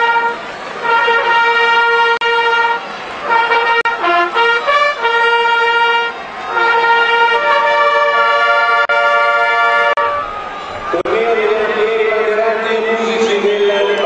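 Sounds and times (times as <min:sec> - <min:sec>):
trumpets playing a fanfare: 0:00.0 - 0:13.5.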